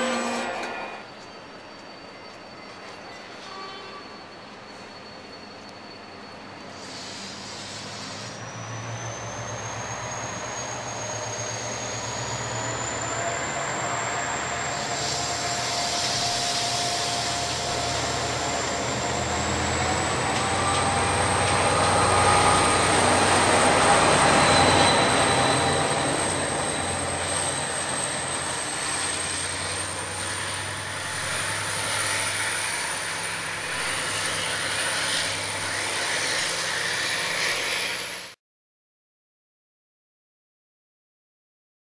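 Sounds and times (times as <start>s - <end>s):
rising whine of locomotive: 0.0s - 38.4s
locomotive engine humming: 8.4s - 38.3s.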